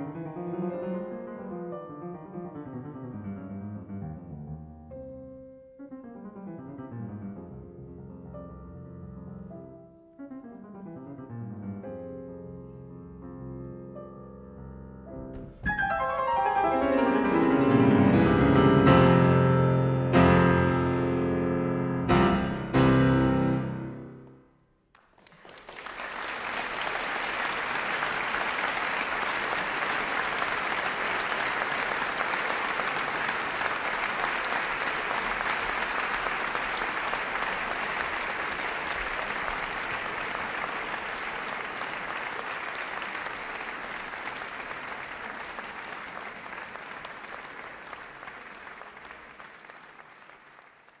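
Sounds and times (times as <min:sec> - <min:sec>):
audience applause: 0:24.9 - 0:51.0.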